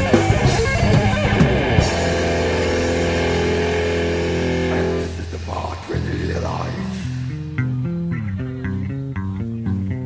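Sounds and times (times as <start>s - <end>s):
distorted electric guitar chord: 0.0s - 9.1s
low bass note: 1.6s - 10.0s.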